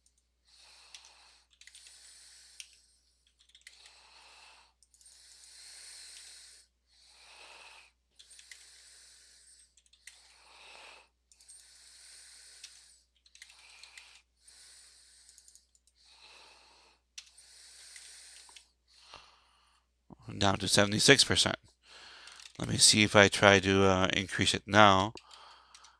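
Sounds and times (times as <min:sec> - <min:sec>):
faint breathing into microphone: 0:00.4 - 0:21.0, 0:21.7 - 0:23.8, 0:24.9 - 0:25.9
computer keyboard clicks: 0:00.9 - 0:01.9, 0:02.6 - 0:04.0, 0:04.8 - 0:05.2, 0:08.2 - 0:08.7, 0:09.8 - 0:10.2, 0:12.6 - 0:14.2, 0:15.2 - 0:16.0.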